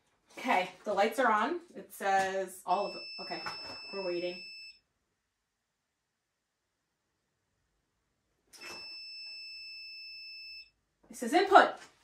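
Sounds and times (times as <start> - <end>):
high-pitched electronic beep: 2.7 - 4.8.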